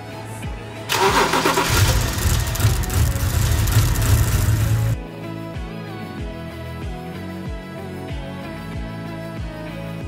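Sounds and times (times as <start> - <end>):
car engine starting and running: 0.9 - 5.0.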